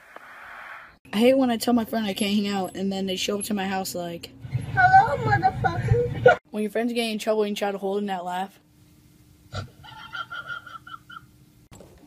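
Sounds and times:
stifled squeaky laughter: 0:09.6 - 0:11.3.

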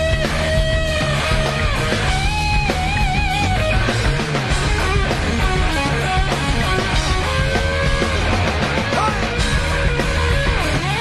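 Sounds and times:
bass and drums: 0:00.0 - 0:11.0
electric guitar lead notes: 0:00.0 - 0:11.0.

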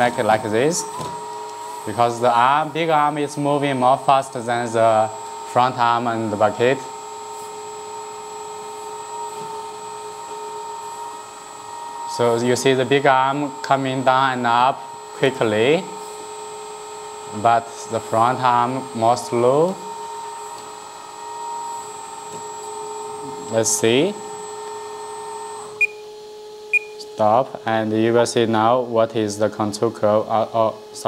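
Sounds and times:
electric hydraulic pump whining: 0:00.0 - 0:31.0.

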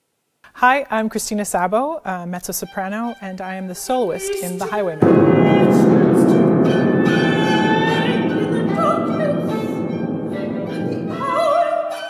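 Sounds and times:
chamber ensemble bowed strings: 0:02.4 - 0:12.0
woman singing with vibrato: 0:03.9 - 0:12.0.

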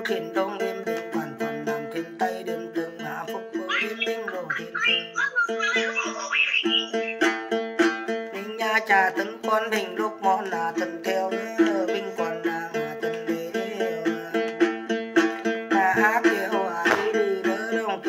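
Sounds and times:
person singing: 0:00.0 - 0:07.5, 0:08.2 - 0:18.0
plucked long-necked lute: 0:00.0 - 0:18.0.

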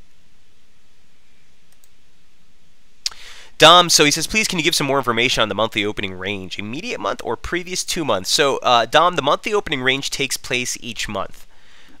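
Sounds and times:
steady background hiss: 0:00.0 - 0:12.0
faint quick clicks: 0:03.0 - 0:03.2.

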